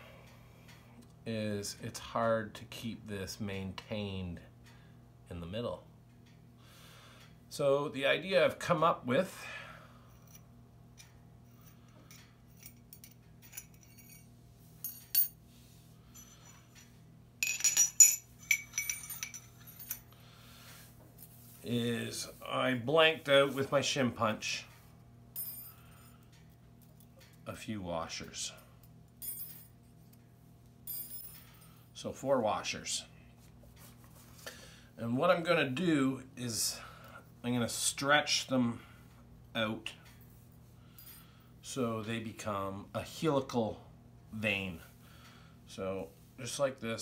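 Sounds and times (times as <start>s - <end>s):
faint low hum: 0.0s - 47.0s
metal tubes clinking: 11.0s - 15.4s, 16.1s - 20.2s
washers handled on stone countertop: 14.8s - 15.4s, 16.2s - 20.1s.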